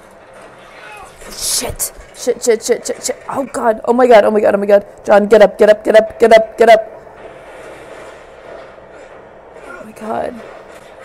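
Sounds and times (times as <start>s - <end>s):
battle scene rumbling: 0.0s - 11.0s.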